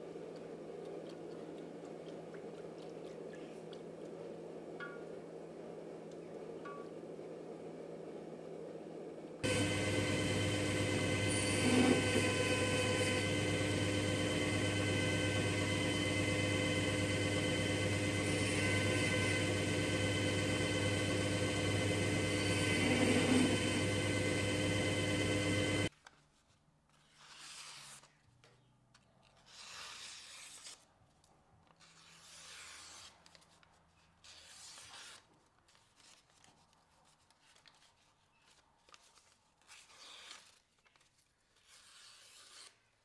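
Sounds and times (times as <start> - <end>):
belt grinder humming: 9.4 - 25.9.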